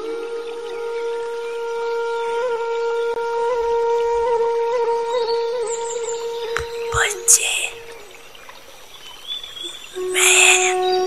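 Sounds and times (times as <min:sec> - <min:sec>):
held flute-like note: 0:00.0 - 0:07.0, 0:10.0 - 0:11.0.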